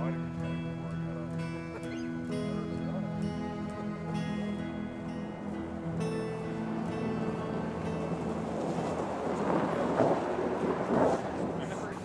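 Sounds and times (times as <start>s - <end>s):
soft background music: 0.0s - 12.0s
steady outdoor noise: 0.0s - 12.0s.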